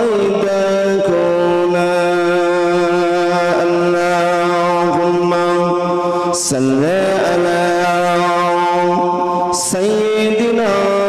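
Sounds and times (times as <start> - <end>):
man chanting into a microphone: 0.0 - 11.0.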